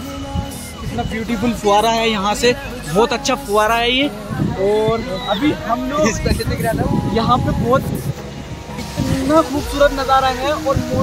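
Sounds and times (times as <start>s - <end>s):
pop song with singing: 0.0s - 11.0s.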